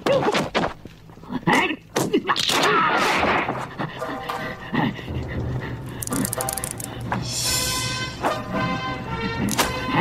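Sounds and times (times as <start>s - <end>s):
sustained film score chord: 3.9s - 10.0s.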